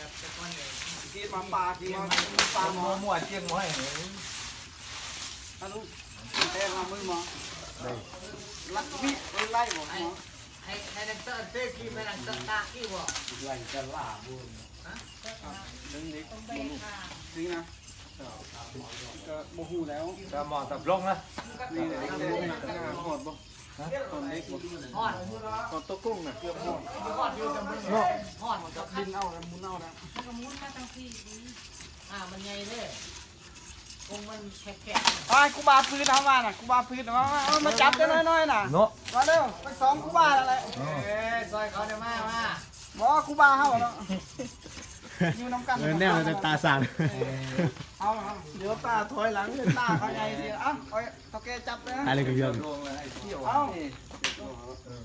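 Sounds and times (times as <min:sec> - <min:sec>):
voices talking: 0:00.0 - 0:55.0
hacksaw cutting ivory: 0:00.1 - 0:50.5.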